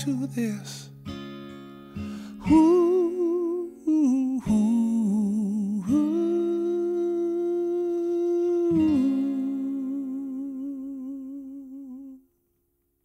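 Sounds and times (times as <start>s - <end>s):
acoustic guitar chord: 0.0s - 12.8s
man humming: 2.8s - 12.2s.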